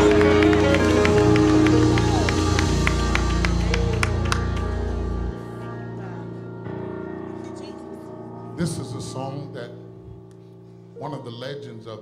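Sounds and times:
live gospel music with heavy bass: 0.0s - 7.0s, 8.5s - 10.0s.

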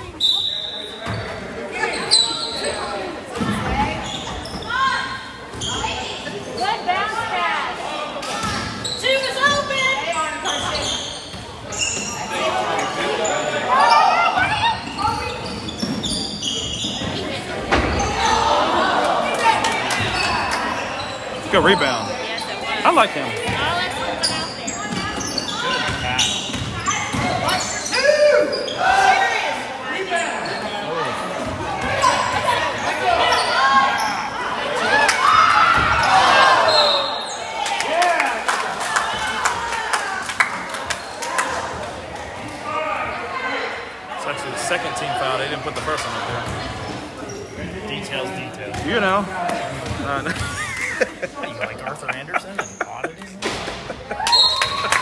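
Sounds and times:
players calling out: 18.0s - 24.2s.

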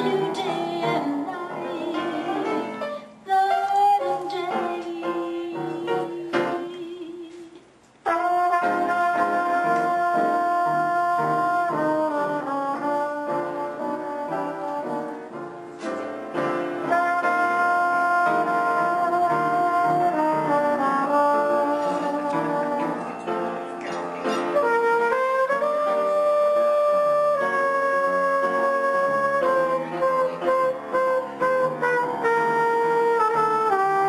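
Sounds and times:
trumpet jazz solo: 0.0s - 7.2s, 8.0s - 34.0s
piano accompaniment: 0.0s - 34.0s.

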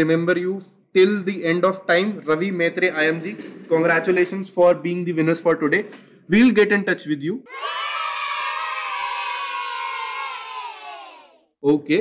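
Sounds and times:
crowd of high voices cheering: 7.5s - 11.4s.

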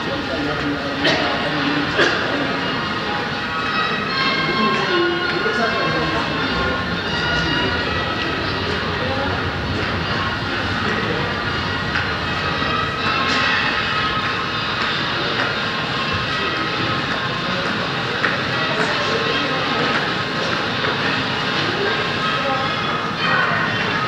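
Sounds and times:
city noise: 0.0s - 24.0s
crowd voices: 0.0s - 24.0s
sustained high tones: 2.7s - 14.8s.

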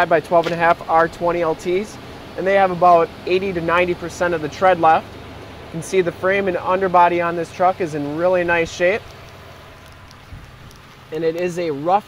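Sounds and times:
outdoor background hiss: 0.0s - 12.0s
wind on microphone: 9.9s - 10.8s.

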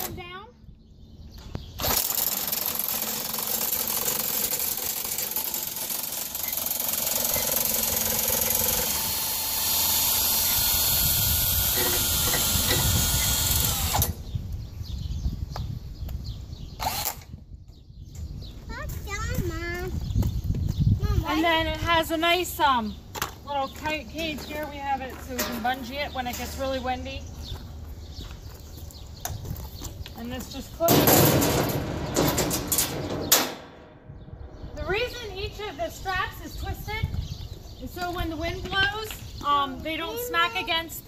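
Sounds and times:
power drill running: 1.8s - 14.2s, 16.8s - 17.2s.

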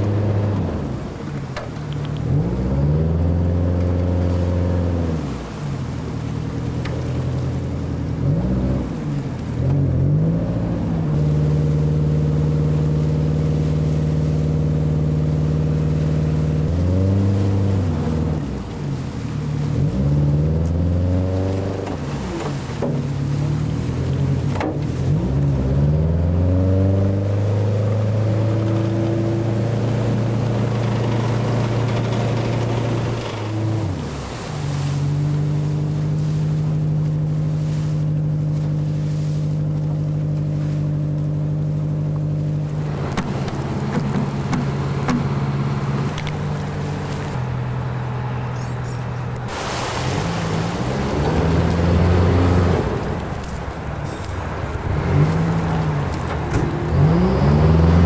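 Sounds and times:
propeller wash churning water: 0.0s - 58.0s
diesel engine running: 27.5s - 58.0s.

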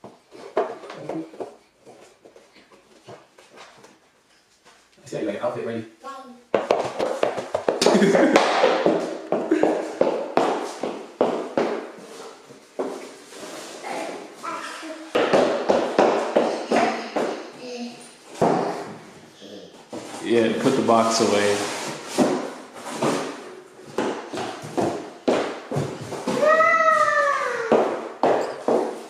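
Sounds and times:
toddler babbling and laughing: 13.9s - 15.2s, 26.3s - 27.9s.

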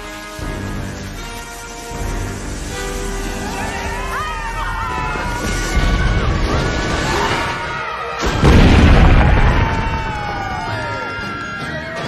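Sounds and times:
orchestral film score: 0.0s - 12.0s
explosion rumble: 8.2s - 10.7s.

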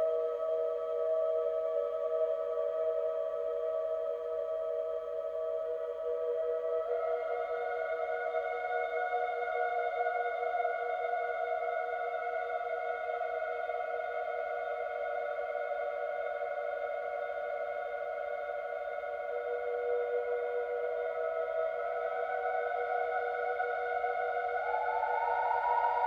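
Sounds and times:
wooden flute with reverb: 0.0s - 26.0s.

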